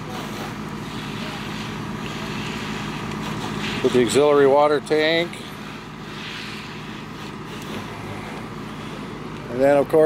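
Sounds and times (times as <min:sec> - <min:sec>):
fire truck engines droning: 0:00.0 - 0:10.0
hiss: 0:00.1 - 0:04.0, 0:05.7 - 0:08.3.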